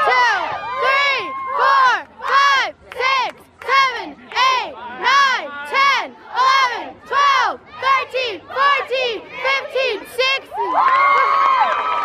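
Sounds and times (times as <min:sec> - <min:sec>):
cheerleaders chanting in unison: 0:00.0 - 0:10.8.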